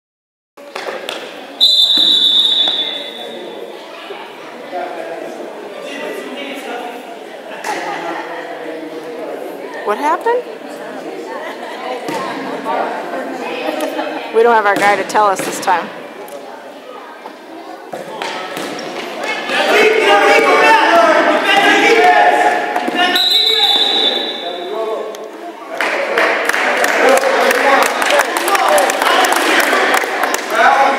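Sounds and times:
voices echoing in a gym: 0.6s - 30.9s
referee's whistle blast: 1.6s - 3.4s, 23.0s - 24.6s.

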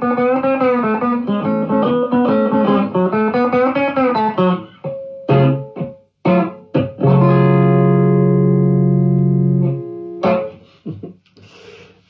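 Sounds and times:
electric guitar chords: 0.0s - 11.1s.

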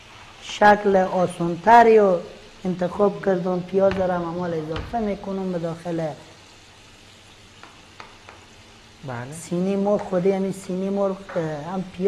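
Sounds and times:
onion sizzling in a frying pan: 0.0s - 12.0s.

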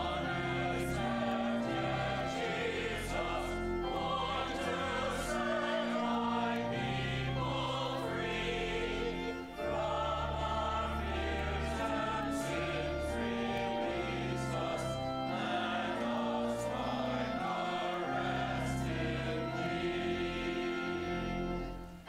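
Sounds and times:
choir and congregation singing hymn: 0.0s - 21.9s
sustained low accompaniment notes: 0.0s - 22.0s.

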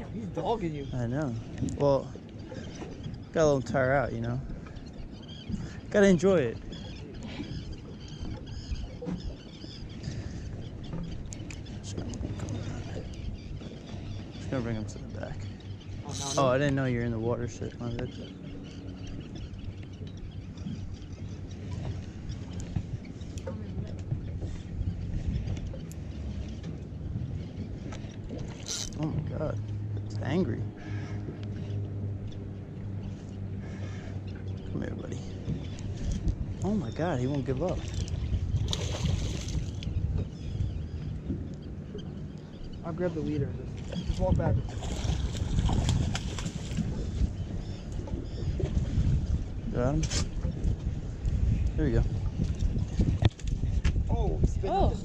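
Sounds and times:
boat engine rumble: 0.0s - 55.0s
wind: 0.0s - 55.0s
fish thrashing and splashing: 38.6s - 39.8s, 44.7s - 46.9s.

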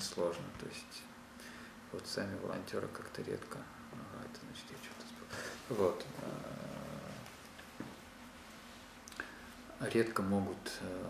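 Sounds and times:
cat purring: 4.0s - 7.4s.

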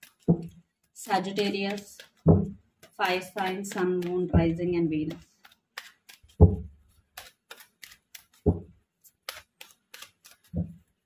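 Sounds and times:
cards being shuffled: 0.0s - 11.0s
cards thudding: 0.0s - 11.0s.

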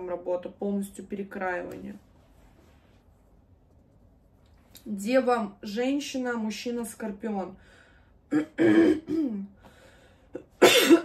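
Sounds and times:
woman clearing her throat: 8.3s - 9.5s, 10.4s - 11.0s.

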